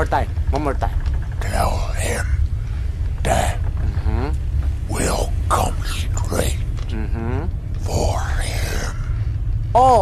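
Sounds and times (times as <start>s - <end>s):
steady low rumble: 0.0s - 10.0s
man whispering: 1.4s - 9.4s.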